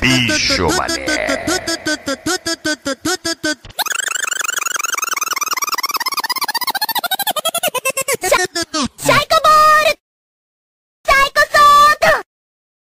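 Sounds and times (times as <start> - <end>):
stuttering chopped voice sample: 0.0 - 7.4.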